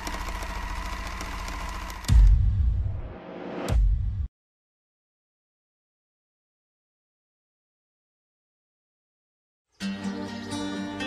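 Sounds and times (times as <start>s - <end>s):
machine buzzing hum with ticking: 0.0s - 2.4s.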